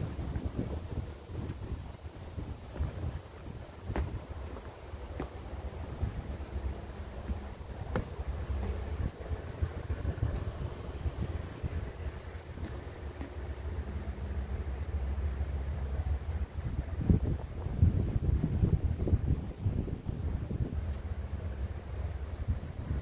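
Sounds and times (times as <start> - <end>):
wind buffeting microphone: 0.0 - 23.0
high insect chirp: 0.2 - 18.0, 21.4 - 23.0.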